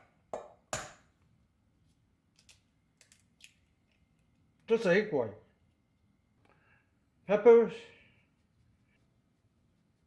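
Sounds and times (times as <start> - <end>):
egg knocking on steel bowl: 0.0 - 1.0.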